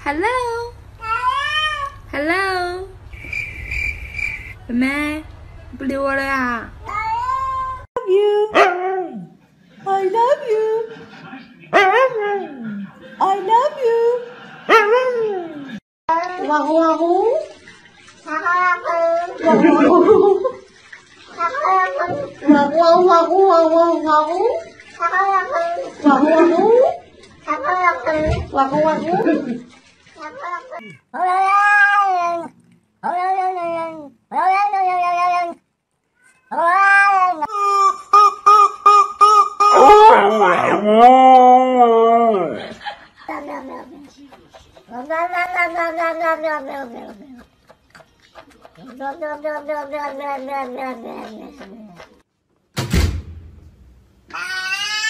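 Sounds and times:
cat meowing: 30.3s - 35.6s, 36.2s - 37.5s, 44.9s - 47.5s, 54.3s - 55.0s
thump: 52.8s - 54.0s.

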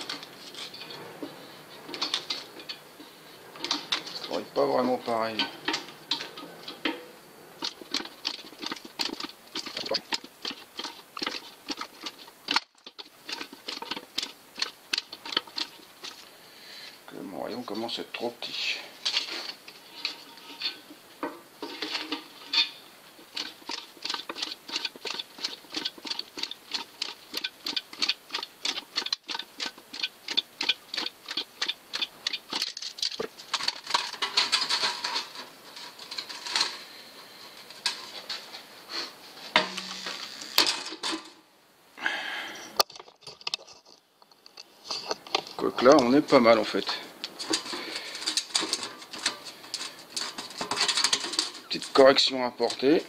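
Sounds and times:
hand-cranked machine clicking: 21.7s - 36.8s.

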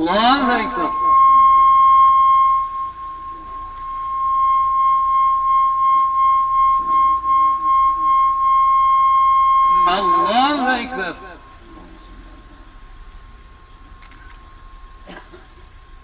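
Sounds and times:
loudspeaker feedback whistle: 0.0s - 11.7s.

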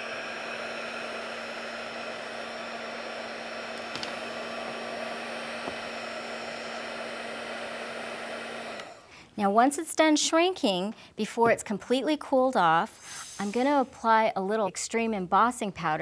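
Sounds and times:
heat tool blowing hot air: 0.0s - 9.1s.

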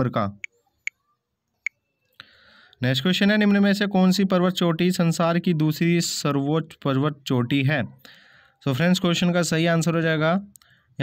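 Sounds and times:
man speaking: 0.0s - 0.5s.

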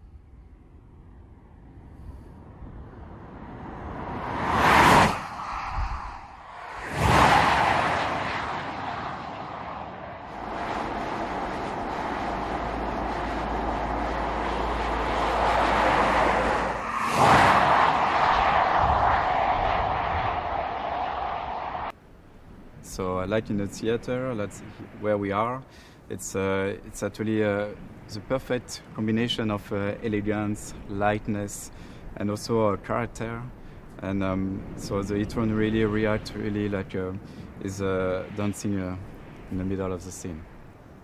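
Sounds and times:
road noise: 0.0s - 41.0s
car driving past: 2.0s - 21.9s.

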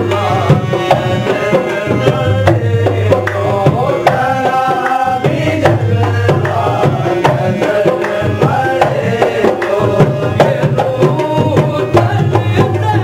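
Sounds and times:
hand drums played fast: 0.0s - 13.0s.

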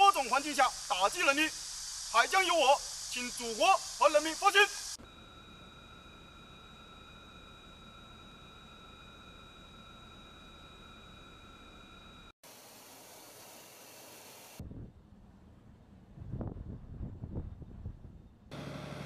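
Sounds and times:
faint hiss: 0.0s - 5.0s, 12.5s - 14.6s
thin high whining tones: 0.0s - 12.3s.

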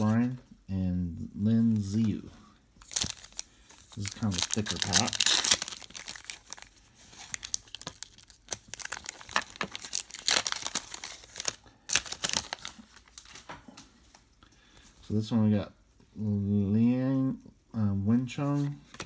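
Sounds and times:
foil wrapper tearing and crinkling: 2.8s - 13.4s.

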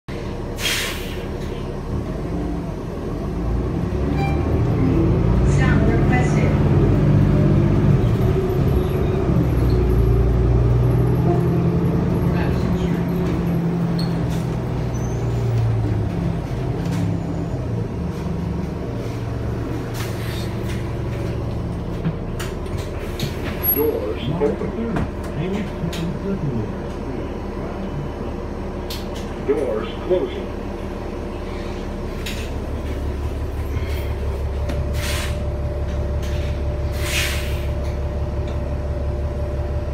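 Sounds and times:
bus diesel engine running: 0.1s - 39.9s
short air hiss: 0.6s - 1.2s, 37.0s - 37.7s.

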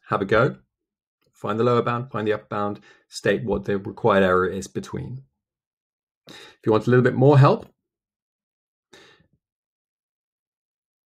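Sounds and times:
short breath: 2.8s - 3.1s, 6.3s - 6.6s, 9.0s - 9.3s.

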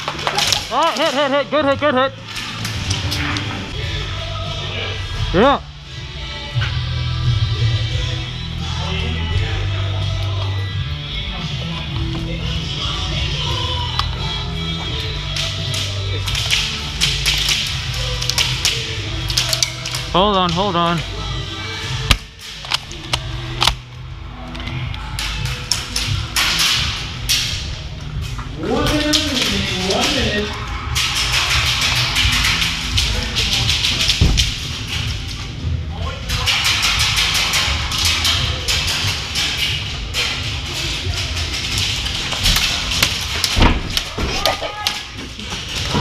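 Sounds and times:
music playing: 0.0s - 46.0s.

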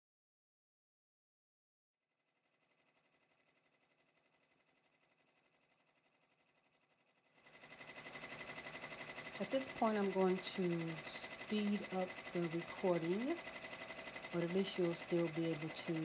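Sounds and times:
embroidery machine stitching: 2.5s - 16.0s.

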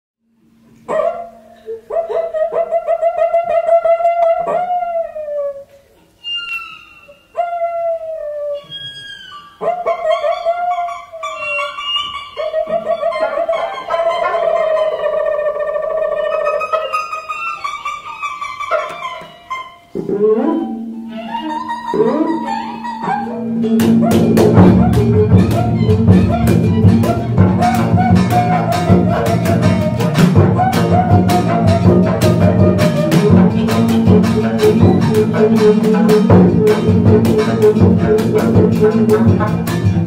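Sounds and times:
instruments imitating animal calls: 1.3s - 40.0s
friction drum squeaky calls: 6.1s - 7.4s, 8.6s - 40.0s.

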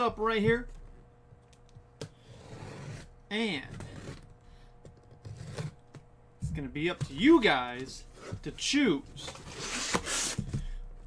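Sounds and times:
knife cutting tape: 9.5s - 10.4s.

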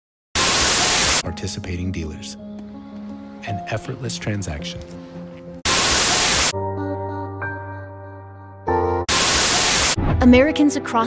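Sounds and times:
burst of static hiss: 0.4s - 1.2s, 5.7s - 6.5s, 9.1s - 10.0s
background music: 0.5s - 11.0s.

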